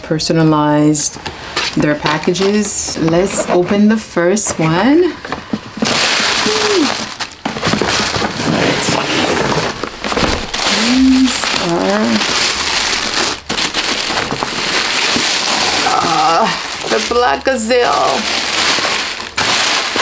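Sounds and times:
tissue paper rustling and crinkling: 4.8s - 20.0s.

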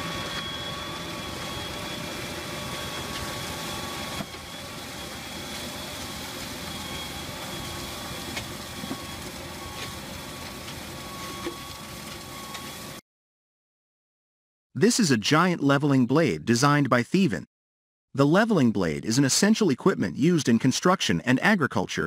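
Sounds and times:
steady high whine: 0.0s - 13.0s.

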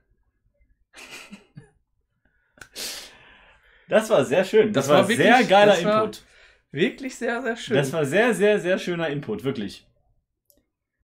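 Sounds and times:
breathy puffs of breath: 2.2s - 3.9s.

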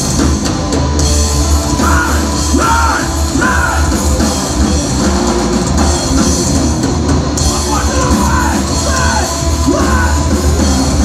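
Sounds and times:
metal band playing: 0.0s - 11.0s
shouted vocals: 1.8s - 4.1s, 7.5s - 10.6s.

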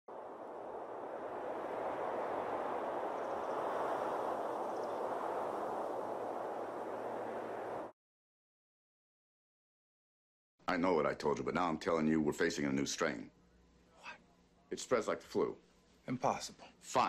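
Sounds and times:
steady rushing noise: 0.1s - 7.9s.

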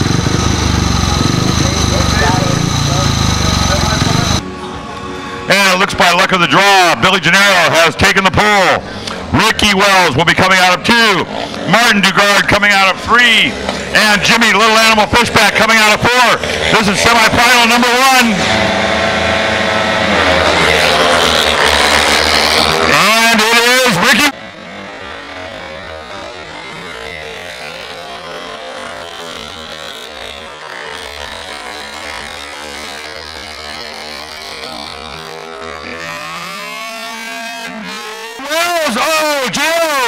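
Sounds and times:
motorcycles racing: 0.0s - 40.0s.

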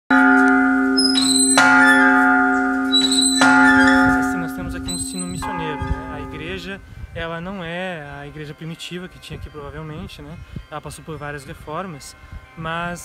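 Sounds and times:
large church bell ringing: 0.1s - 10.2s
man's voice: 4.1s - 13.0s.

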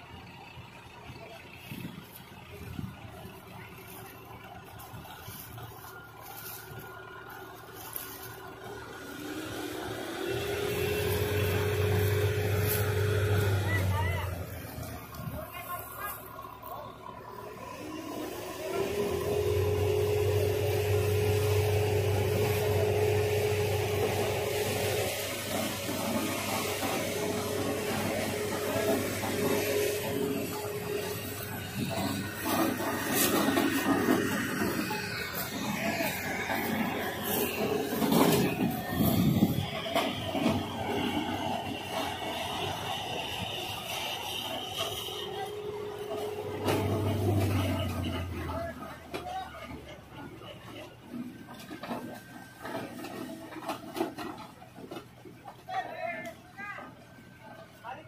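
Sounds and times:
tractor diesel engine revving: 0.0s - 57.8s.

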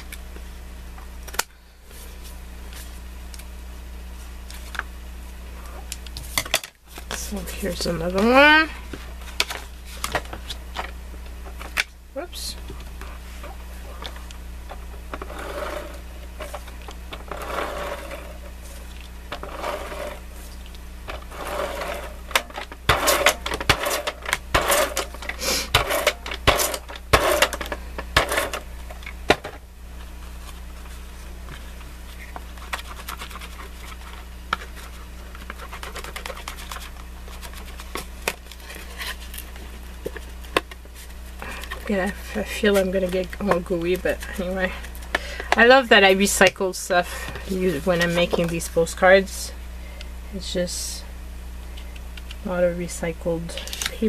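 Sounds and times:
steady low hum: 0.0s - 54.0s
cardboard rustling: 14.9s - 45.0s.

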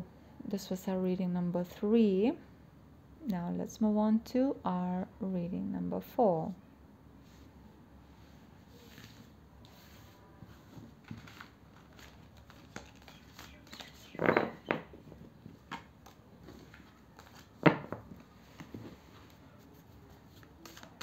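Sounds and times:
cards sliding and tapping: 11.0s - 17.5s, 20.4s - 21.0s
cards clattering: 11.0s - 18.0s.

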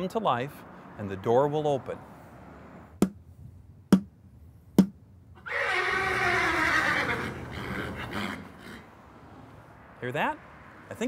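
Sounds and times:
horse whinnying: 5.4s - 8.9s.

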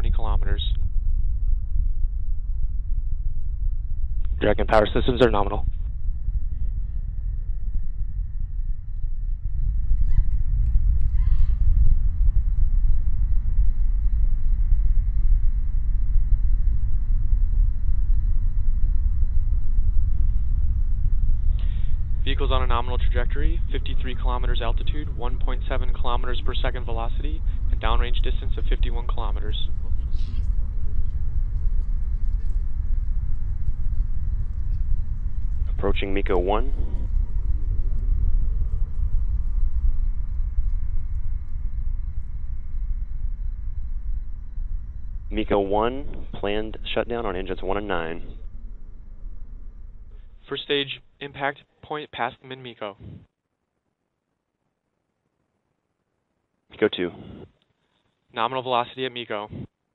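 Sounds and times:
rocket engines low rumble: 0.0s - 53.3s, 56.7s - 57.5s, 58.4s - 59.7s.

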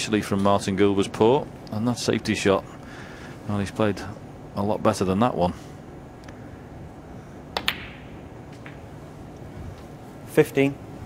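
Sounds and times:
snooker balls clicking: 7.5s - 8.9s
cue striking ball: 7.6s - 8.9s.

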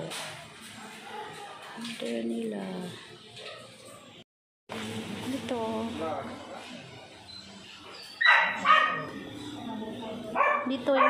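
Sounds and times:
dog barking: 0.7s - 1.8s, 8.2s - 9.2s, 10.3s - 11.0s.

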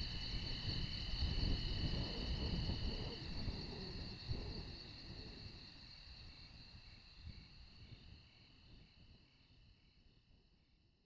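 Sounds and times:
crickets trilling: 0.0s - 10.1s.

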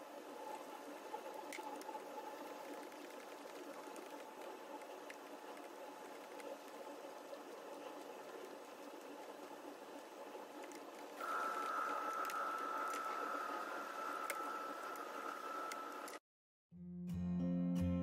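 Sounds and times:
mechanical hum: 0.0s - 16.2s
high whine: 11.2s - 16.2s.

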